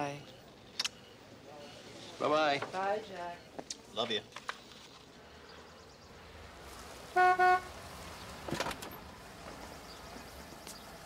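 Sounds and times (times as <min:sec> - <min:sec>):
car horn honks: 0:07.1 - 0:07.7.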